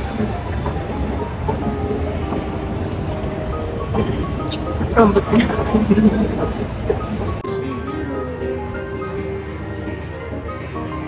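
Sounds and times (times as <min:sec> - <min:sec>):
escalator rumbling: 0:00.0 - 0:09.5
music playing: 0:00.0 - 0:11.0.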